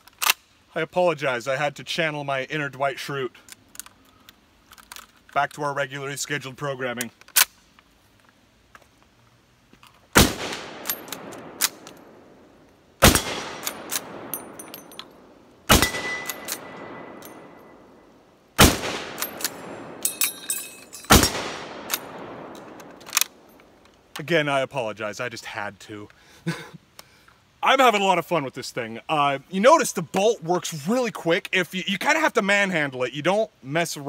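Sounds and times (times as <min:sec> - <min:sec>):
rifle shots echoing: 0:10.2 - 0:23.7
rifle bolt clicking: 0:10.8 - 0:12.1, 0:13.0 - 0:17.4, 0:21.1 - 0:24.0.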